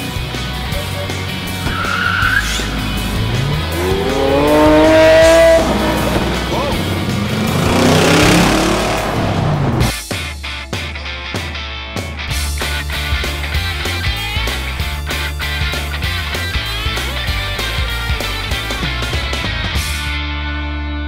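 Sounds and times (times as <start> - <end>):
music with a beat: 0.0 - 20.5
sports car engines revving: 0.4 - 9.9.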